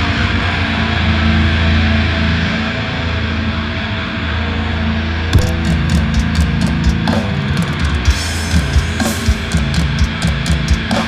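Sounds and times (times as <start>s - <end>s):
distorted guitars and bass: 0.0s - 11.0s.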